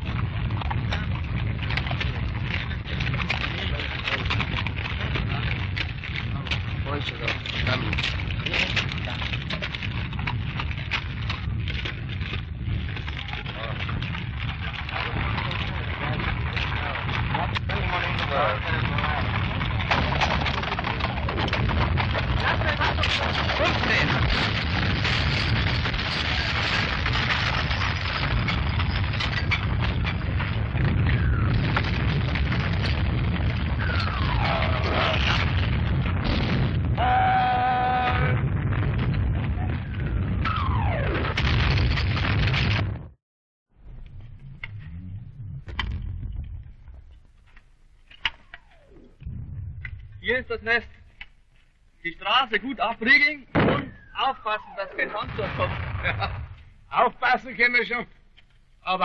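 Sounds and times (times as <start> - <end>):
crackling and clattering: 0.0 - 37.2, 37.8 - 43.2, 43.8 - 59.0
distant artillery rumble: 0.0 - 59.0.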